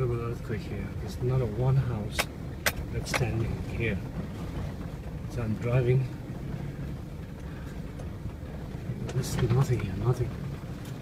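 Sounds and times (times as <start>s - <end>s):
car rumbling on dirt track: 0.0s - 11.0s.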